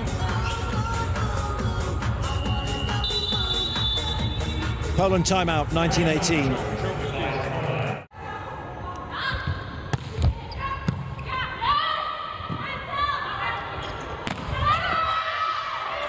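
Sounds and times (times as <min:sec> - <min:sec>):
shoes squeaking on court floor: 0:13.7 - 0:14.2.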